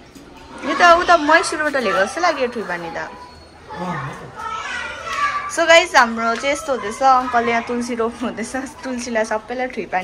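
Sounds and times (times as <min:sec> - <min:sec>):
children talking and playing: 0:00.0 - 0:10.0.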